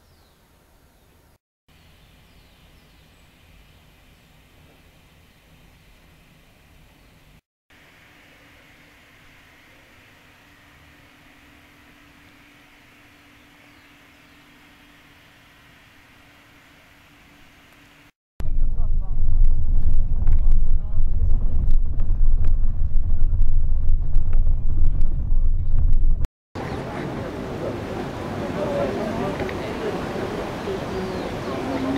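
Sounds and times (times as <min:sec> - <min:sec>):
vehicle rumble and rattle: 0:18.4 - 0:26.3.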